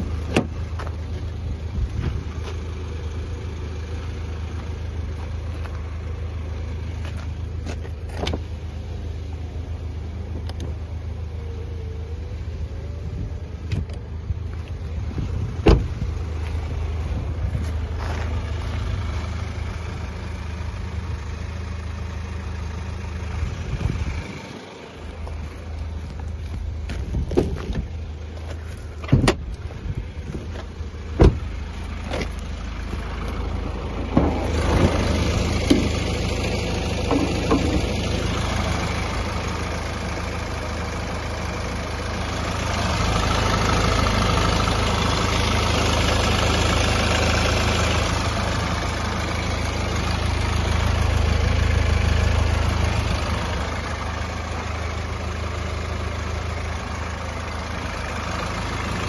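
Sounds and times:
diesel engine idling: 0.0 - 59.0.

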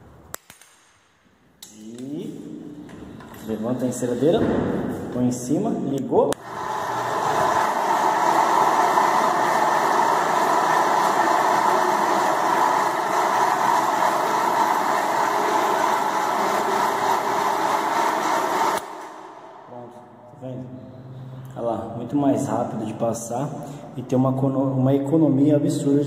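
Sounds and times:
rotary floor polisher running: 6.4 - 19.3.

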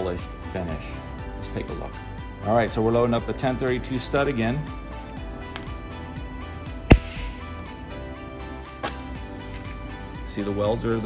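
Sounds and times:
background music: 0.0 - 11.0
stud welder sharp crack: 6.9 - 7.5.

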